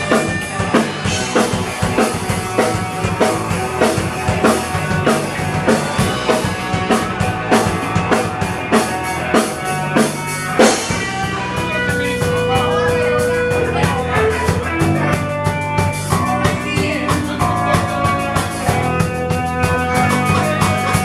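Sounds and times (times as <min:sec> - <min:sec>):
drum kit steady beat: 0:00.0 - 0:21.0
electric bass: 0:00.0 - 0:21.0
electric guitar: 0:00.0 - 0:21.0.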